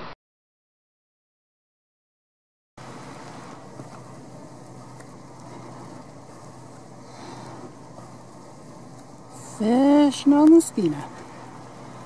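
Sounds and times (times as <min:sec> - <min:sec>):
faint low hum: 0:02.8 - 0:12.0.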